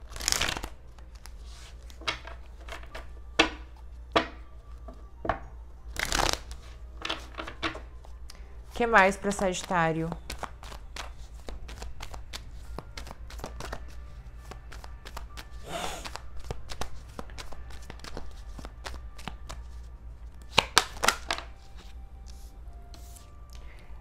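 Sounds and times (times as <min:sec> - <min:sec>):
cards being shuffled by hand: 0:00.0 - 0:03.2, 0:05.9 - 0:23.6.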